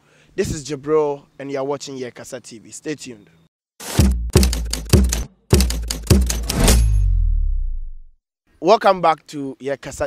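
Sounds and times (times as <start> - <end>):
glitchy hits with bass thuds: 3.8 - 8.1
low ringing boom: 6.6 - 8.2.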